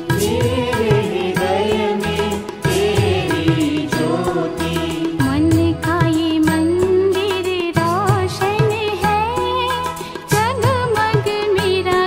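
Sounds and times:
percussion beat and bass: 0.0s - 12.0s.

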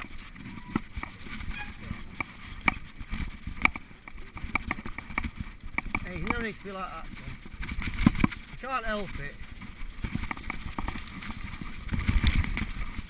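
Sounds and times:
bike rattles and knocks: 0.0s - 13.0s
bike tyre rumble: 0.0s - 13.0s.

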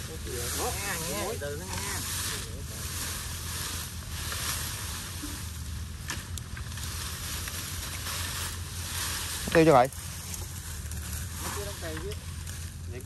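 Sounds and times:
dry branches and leaves rustling: 0.0s - 13.0s
twigs snapping: 6.0s - 8.5s.

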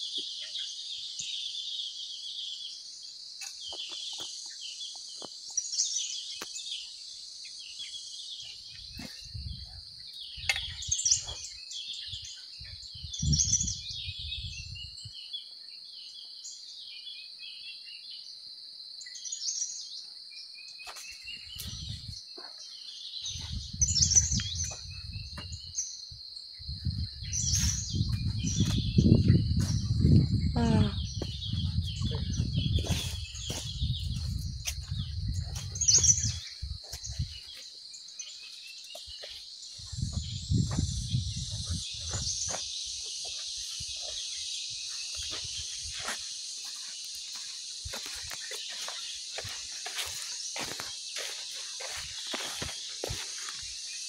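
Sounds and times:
insect drone: 0.0s - 54.0s
small birds chirping: 0.0s - 54.0s.

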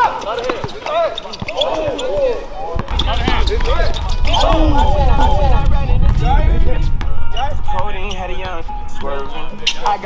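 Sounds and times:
sneakers squeaking on court: 0.0s - 4.5s
players' voices: 0.0s - 10.0s
steady low rumble: 3.0s - 9.8s.

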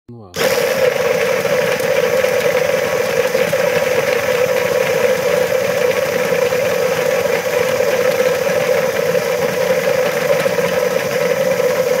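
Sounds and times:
motor whirring hum: 0.4s - 12.0s.

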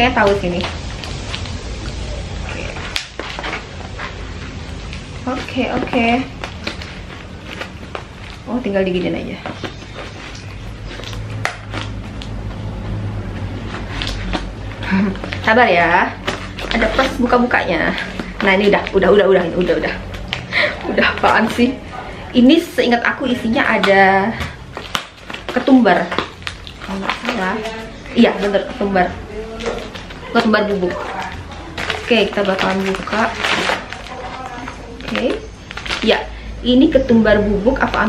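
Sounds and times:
cardboard parcel clicks and rustles: 2.6s - 21.7s, 23.5s - 36.4s
packing tape tearing: 13.6s - 14.5s, 23.7s - 28.5s, 29.5s - 36.3s.

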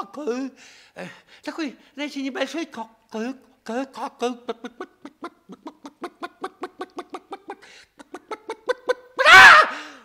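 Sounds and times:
person clucking like a hen: 4.5s - 9.2s.

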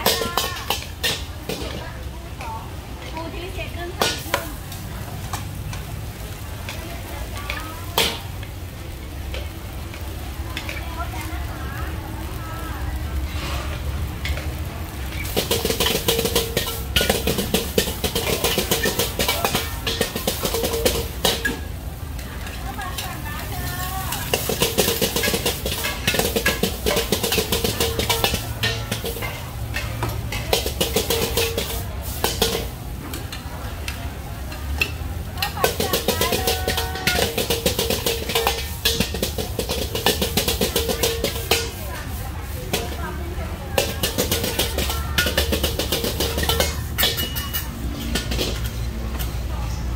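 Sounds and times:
food sizzling: 0.0s - 49.9s
ladle scraping and clanking on wok: 0.0s - 49.9s.

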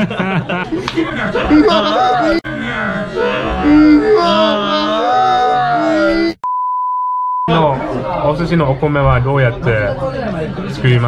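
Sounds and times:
high-pitched censor beep: 6.4s - 7.5s.

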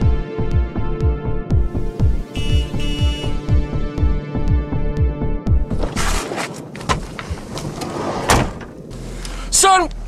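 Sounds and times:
car door slamming shut: 8.2s - 8.8s.

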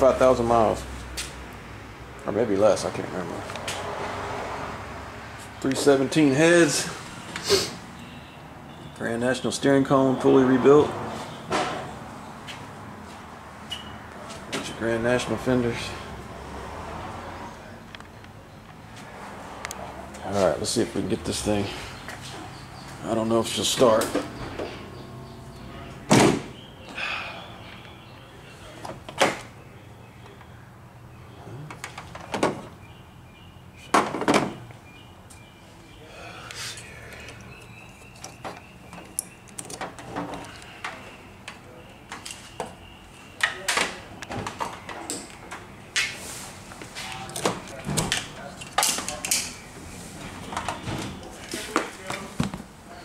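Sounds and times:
hands working in car engine bay: 36.4s - 42.8s.

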